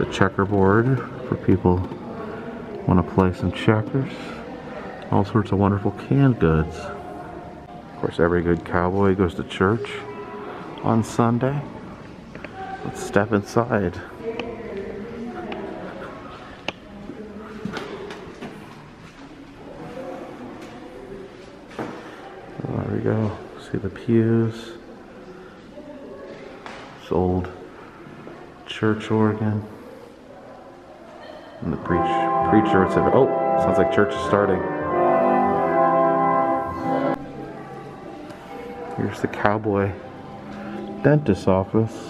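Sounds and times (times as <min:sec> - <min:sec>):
church organ chords: 0:31.6 - 0:37.8, 0:38.7 - 0:42.0.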